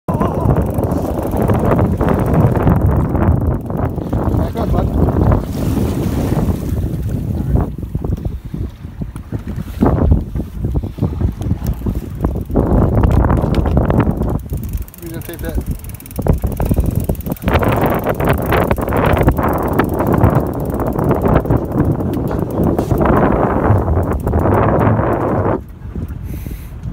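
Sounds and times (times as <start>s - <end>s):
choppy water wash: 0.1s - 26.9s
wind buffeting microphone: 0.1s - 26.9s.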